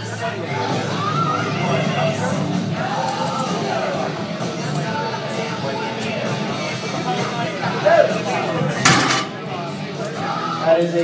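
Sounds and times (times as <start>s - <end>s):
barbell plates clanking: 8.9s - 9.5s.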